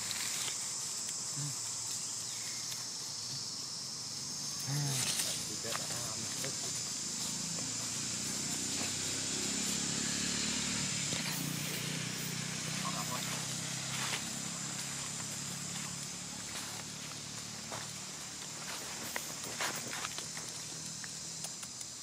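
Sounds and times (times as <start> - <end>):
dry leaves crackling: 0.0 - 10.1, 11.1 - 21.4
insects buzzing: 0.0 - 22.0.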